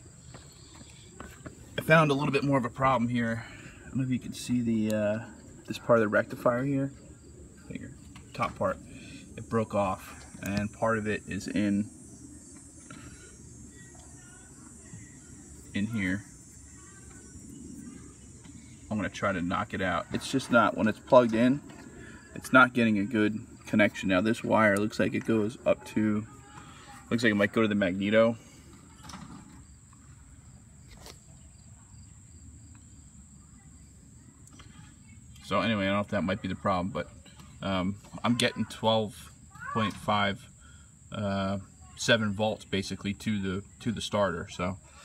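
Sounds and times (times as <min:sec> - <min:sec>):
high-pitched insect trill: 0:05.2 - 0:37.0.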